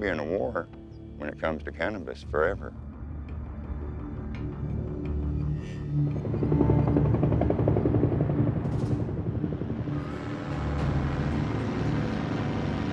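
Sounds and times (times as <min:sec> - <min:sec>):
music playing: 0:00.0 - 0:12.9
helicopter rotor chop: 0:06.0 - 0:12.9.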